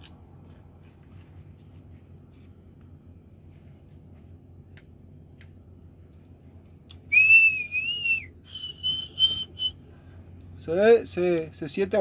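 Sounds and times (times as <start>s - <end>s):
low steady hum: 0.0s - 12.0s
man whistling: 7.1s - 9.8s.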